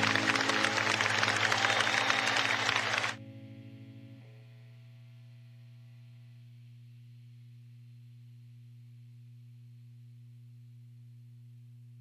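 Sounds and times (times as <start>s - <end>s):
crowd applauding and cheering: 0.0s - 3.2s.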